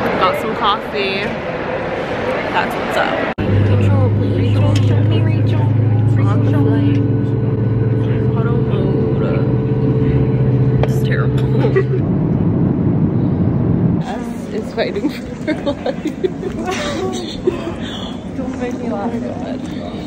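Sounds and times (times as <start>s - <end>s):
faint voices: 0.0s - 12.0s, 13.9s - 20.0s
jet engine drone in cabin: 0.0s - 20.0s.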